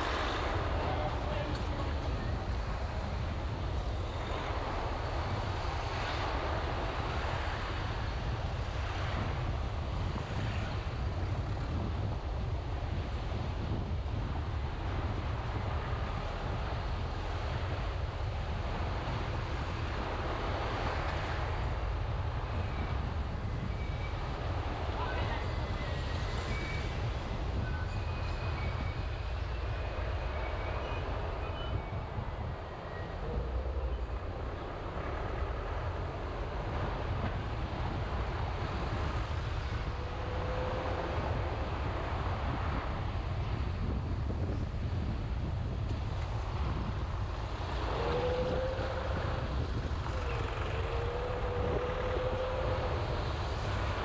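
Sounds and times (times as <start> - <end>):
car road and wind noise: 0.0 - 54.0
vehicles passing: 29.2 - 43.8, 46.2 - 54.0.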